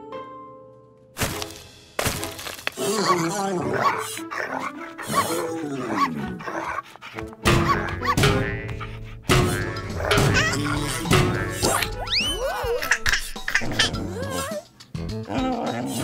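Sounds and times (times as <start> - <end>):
background music: 0.0 - 16.0
wavering cartoon vocal sounds: 2.8 - 6.7, 7.6 - 16.0.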